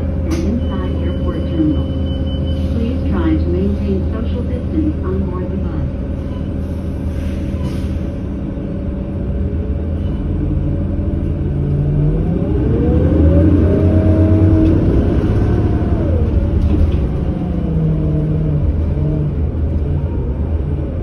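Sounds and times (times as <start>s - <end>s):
bus engine accelerating: 0.0s - 21.0s.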